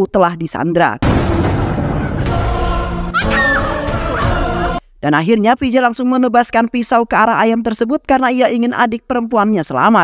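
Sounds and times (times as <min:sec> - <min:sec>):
tense music score: 0:01.0 - 0:04.8
woman crying out and pleading: 0:03.2 - 0:04.8.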